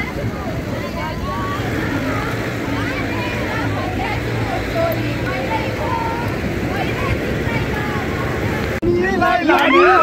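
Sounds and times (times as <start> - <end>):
indistinct voices talking: 0.0 - 10.0.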